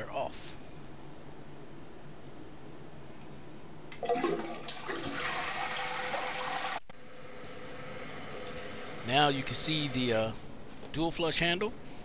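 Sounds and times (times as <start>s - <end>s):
toilet flushing water rush: 3.9s - 10.2s
toilet flush clunk: 4.0s - 6.8s.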